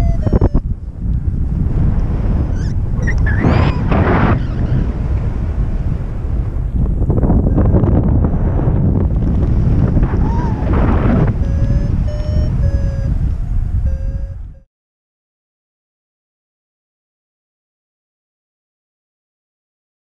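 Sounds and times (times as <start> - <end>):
electronic instrument beeping: 0.0 - 0.7, 10.0 - 14.6
wind rushing over microphone: 0.0 - 14.7.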